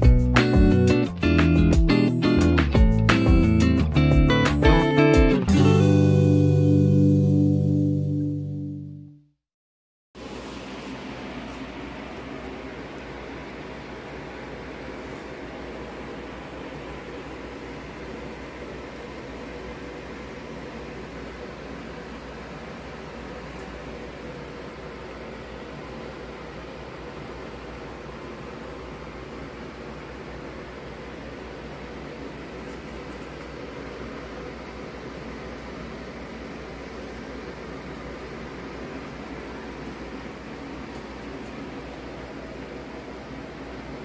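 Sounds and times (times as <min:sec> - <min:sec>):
steady hiss with low hum: 0:10.2 - 0:44.0.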